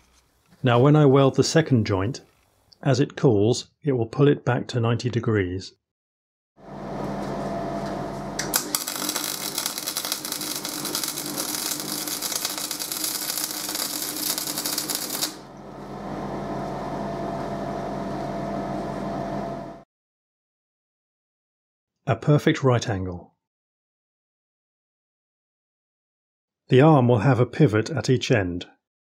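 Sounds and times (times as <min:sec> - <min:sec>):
steady hum: 0:06.7 - 0:19.8
welding arc crackling: 0:08.4 - 0:15.5.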